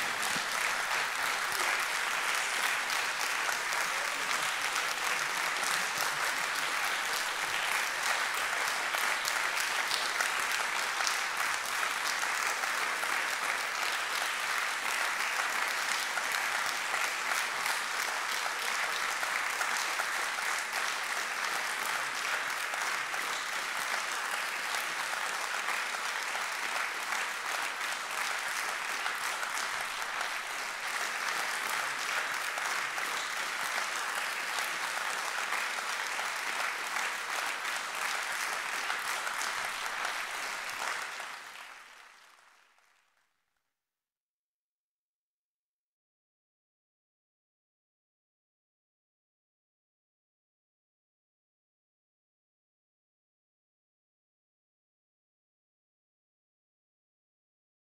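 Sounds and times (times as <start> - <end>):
audience applauding: 0.0 - 43.2.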